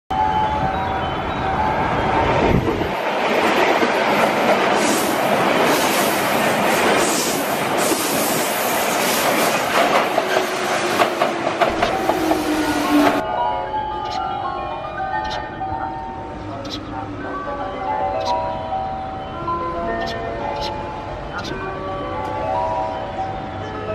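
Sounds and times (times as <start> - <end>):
train rushing past: 0.2 - 23.9.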